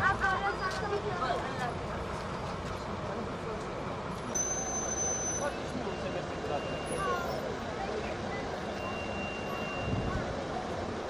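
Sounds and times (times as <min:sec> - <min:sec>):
faint indistinct voices: 0:00.0 - 0:11.0
traffic rumble: 0:00.0 - 0:11.0.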